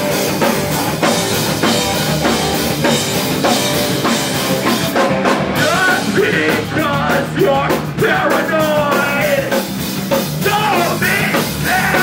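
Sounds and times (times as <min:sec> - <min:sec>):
punk band playing live: 0:00.0 - 0:12.0.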